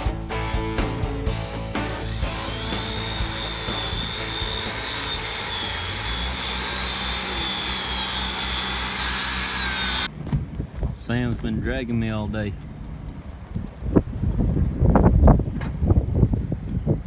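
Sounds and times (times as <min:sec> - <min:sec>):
background music: 0:00.0 - 0:06.5
angle grinder grinding steel: 0:01.9 - 0:10.1.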